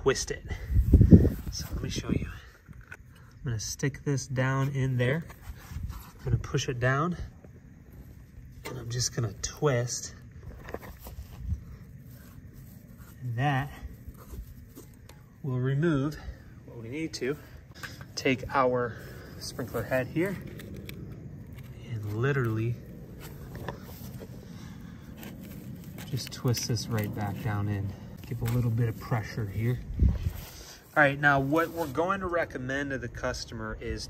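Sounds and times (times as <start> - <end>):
steady outdoor background: 0.0 - 34.0.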